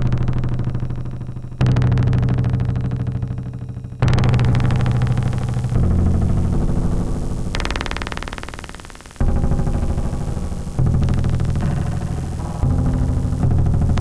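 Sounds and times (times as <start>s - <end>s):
synthesized low tones: 0.0s - 14.0s
drum strikes: 7.5s - 14.0s.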